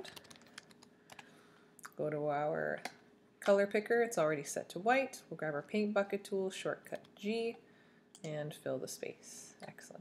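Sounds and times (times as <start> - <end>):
keyboard typing: 0.0 - 1.3.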